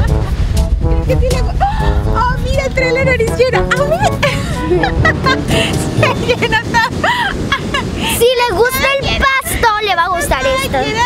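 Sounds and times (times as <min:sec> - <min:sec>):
comic music with brass lead: 0:00.0 - 0:06.5
wind on microphone: 0:00.0 - 0:11.0.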